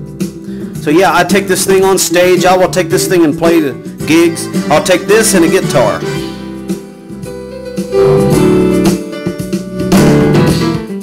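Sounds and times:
keyboard playing chords: 0:00.0 - 0:11.0.

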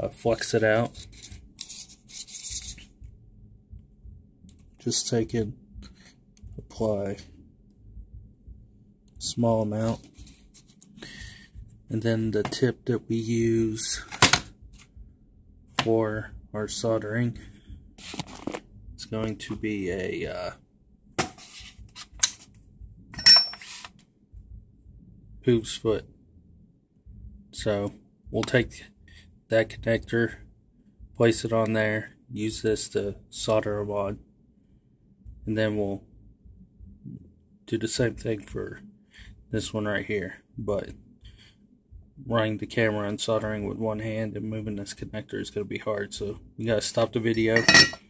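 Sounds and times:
faint low hum: 0:00.0 - 0:48.0
rubbing handling noise: 0:00.1 - 0:03.2, 0:09.7 - 0:12.6, 0:18.0 - 0:19.3, 0:21.2 - 0:22.6, 0:23.2 - 0:24.0, 0:46.8 - 0:48.0
tools clattering on workbench: 0:23.2 - 0:23.8, 0:47.5 - 0:48.0
metallic ring: 0:23.2 - 0:23.9, 0:47.4 - 0:48.0.

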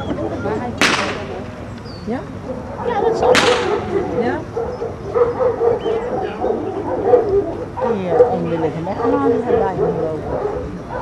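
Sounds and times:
dog whining and yipping: 0:01.9 - 0:11.0.

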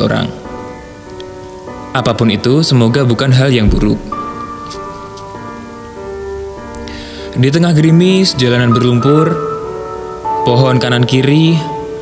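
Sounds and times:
slow music of held notes: 0:00.0 - 0:12.0.

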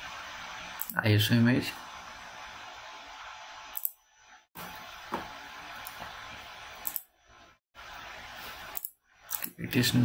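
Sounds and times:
computer mouse click: 0:06.8 - 0:07.1.

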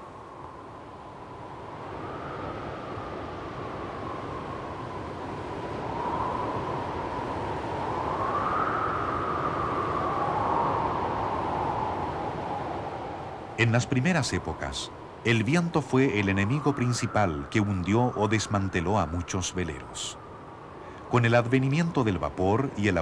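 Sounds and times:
faint whistling wind tone: 0:00.0 - 0:23.0
wind blowing: 0:00.0 - 0:23.0.

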